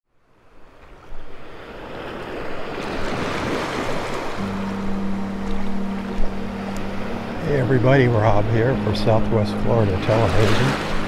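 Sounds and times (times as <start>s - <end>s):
small waves breaking: 0.2s - 7.4s
steady low hum: 4.4s - 11.0s.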